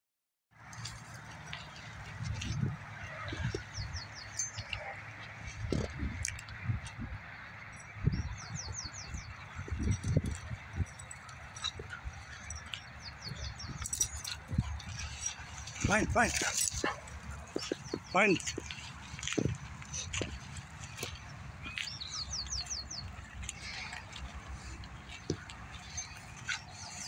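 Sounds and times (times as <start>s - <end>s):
rustling through dry brush: 0.7s - 6.7s, 9.4s - 27.0s.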